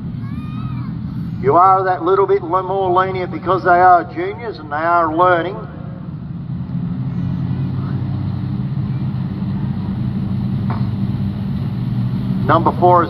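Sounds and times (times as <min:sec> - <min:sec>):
race car engines droning: 0:00.0 - 0:13.0.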